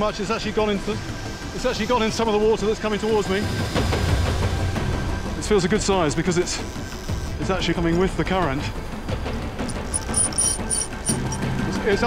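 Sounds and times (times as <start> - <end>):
fishing reel clicking: 9.7 - 11.4.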